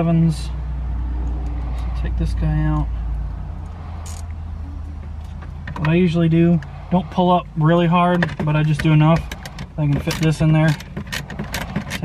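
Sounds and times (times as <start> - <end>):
low hum in cab: 0.0 - 12.0.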